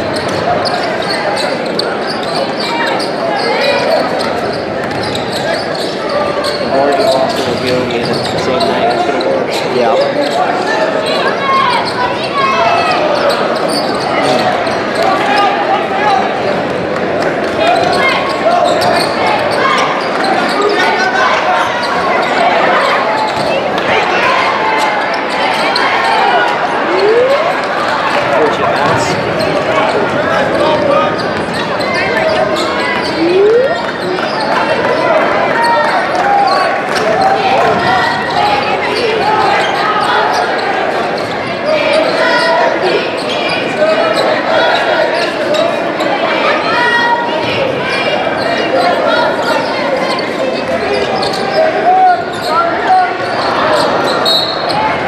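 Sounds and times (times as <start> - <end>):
crowd chatter echoing: 0.0 - 55.0.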